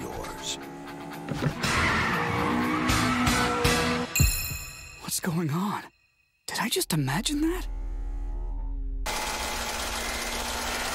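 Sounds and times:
rasping engine at high revs: 0.0 - 4.1, 8.0 - 10.9
low steady engine drone: 7.3 - 10.9.

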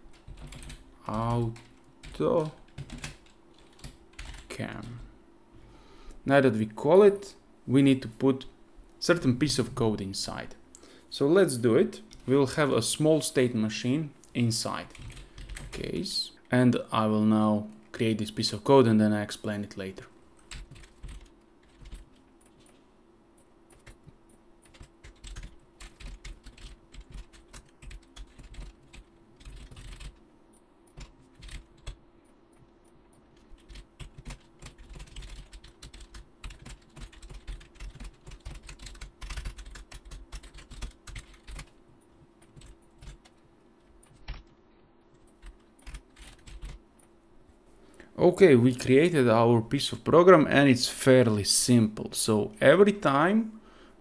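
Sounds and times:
computer keyboard typing: 0.1 - 5.0, 14.9 - 15.9, 20.4 - 22.8, 23.4 - 41.8, 42.4 - 43.4, 44.0 - 44.5, 45.1 - 46.8.

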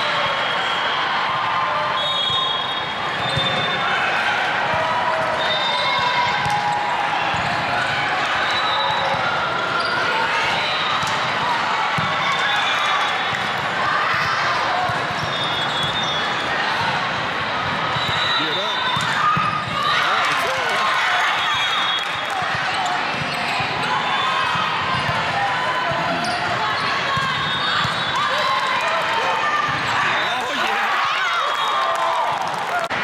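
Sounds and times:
voices calling and chattering: 7.0 - 31.6.

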